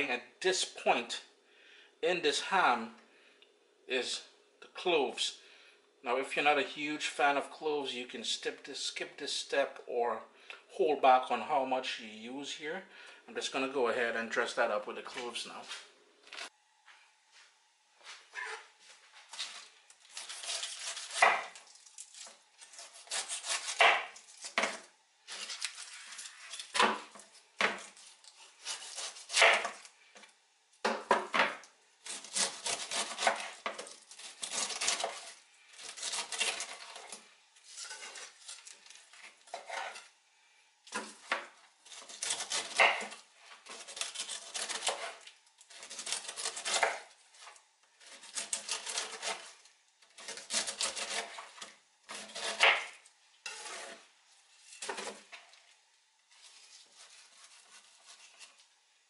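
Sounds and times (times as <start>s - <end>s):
knife slicing on wooden board: 19.4s - 21.6s, 22.7s - 25.9s, 28.6s - 29.8s, 32.1s - 37.2s, 39.5s - 40.1s, 40.9s - 47.1s, 50.2s - 54.0s, 56.5s - 58.5s.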